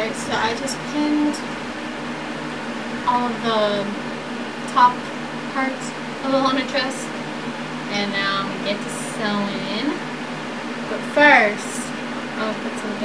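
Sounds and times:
woman speaking: 0:00.0 - 0:01.5, 0:03.1 - 0:04.0, 0:04.7 - 0:07.2, 0:07.9 - 0:10.0, 0:10.9 - 0:13.0
electric fan humming: 0:00.0 - 0:13.0.

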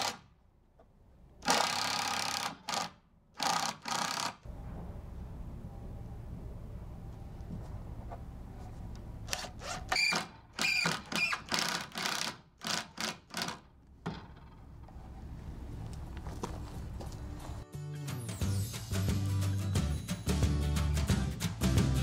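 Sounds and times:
impact driver driving screw: 0:01.4 - 0:04.4, 0:09.3 - 0:13.6.

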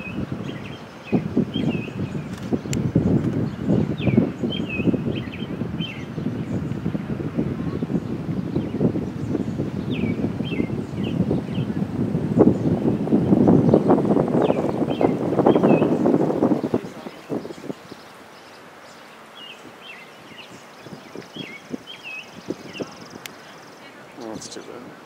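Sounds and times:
bird chirping: 0:00.0 - 0:07.0, 0:07.6 - 0:24.9
wind buffeting microphone: 0:00.0 - 0:25.0.

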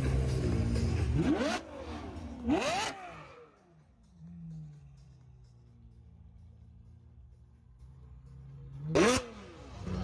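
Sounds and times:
sports car engine revving: 0:00.0 - 0:05.3, 0:08.1 - 0:10.0.

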